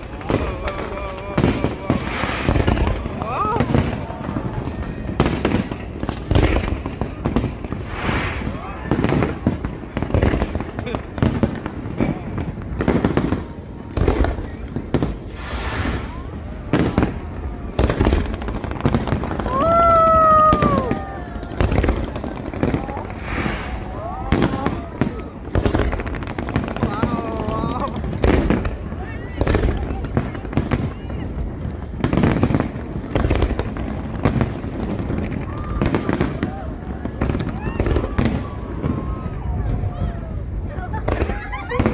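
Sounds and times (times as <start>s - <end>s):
fireworks bursting: 0.0s - 41.9s
large crowd voices: 0.0s - 41.9s.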